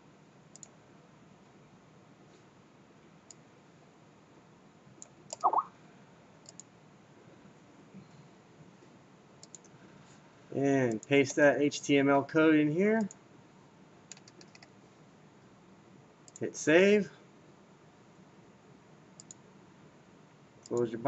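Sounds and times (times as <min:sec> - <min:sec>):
computer mouse clicks: 0:00.5 - 0:00.7, 0:06.4 - 0:06.7, 0:09.4 - 0:09.7, 0:14.1 - 0:14.7, 0:19.2 - 0:19.4
rising pitched sound: 0:05.4 - 0:05.7.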